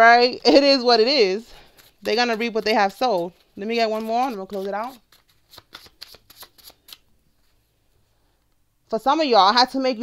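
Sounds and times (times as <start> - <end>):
paper cards being shuffled: 1.6 - 7.6.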